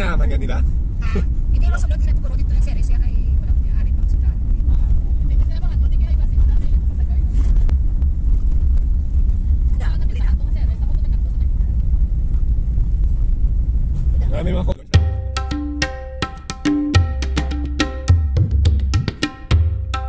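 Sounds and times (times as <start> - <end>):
road and engine rumble in cabin: 0.0 - 15.0.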